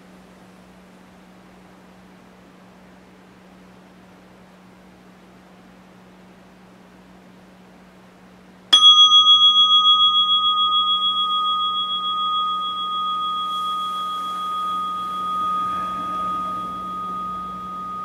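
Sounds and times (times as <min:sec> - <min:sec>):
meditation bell ringing: 0:08.8 - 0:18.0.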